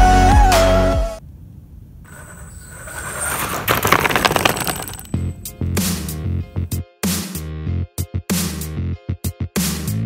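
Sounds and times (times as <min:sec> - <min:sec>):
dense crackling noise: 0:02.0 - 0:05.3.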